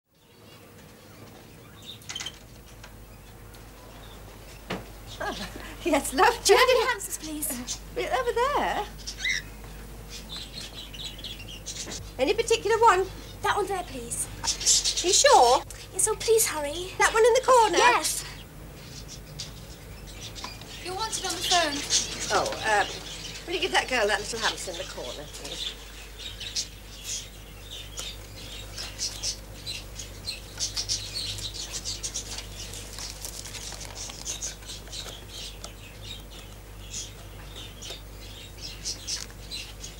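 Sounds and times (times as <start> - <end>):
small birds chirping: 0.1 - 39.9
low steady hum: 0.2 - 39.9.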